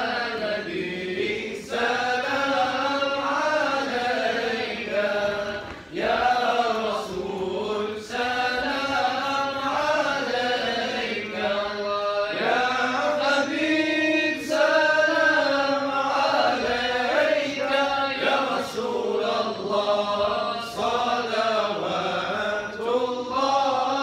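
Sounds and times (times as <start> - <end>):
men chanting together: 0.0 - 24.0.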